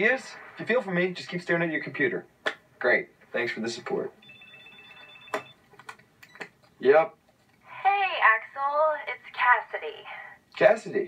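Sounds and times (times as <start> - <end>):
cell phone ringing: 4.2 - 5.6.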